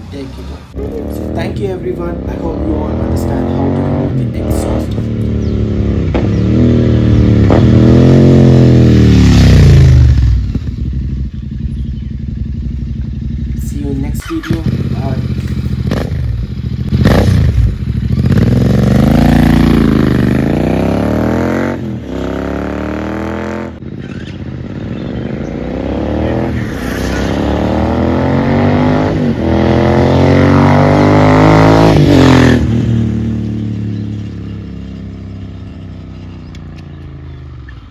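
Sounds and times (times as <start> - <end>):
motorcycle engine accelerating: 0.0 - 37.9.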